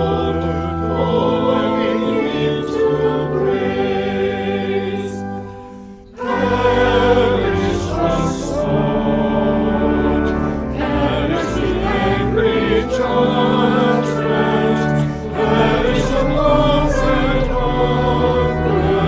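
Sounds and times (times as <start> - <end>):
choir singing: 0.0 - 19.0.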